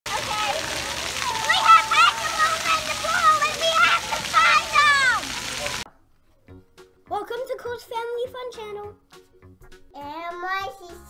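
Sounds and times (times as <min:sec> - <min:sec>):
children calling and squealing: 0:00.1 - 0:05.8
fountain jets spraying water: 0:00.1 - 0:05.9.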